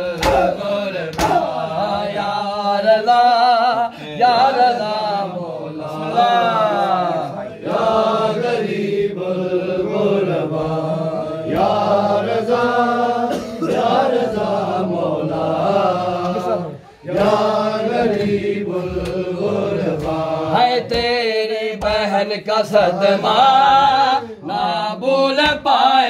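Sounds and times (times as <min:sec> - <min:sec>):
men chanting a lament: 0:00.0 - 0:26.0.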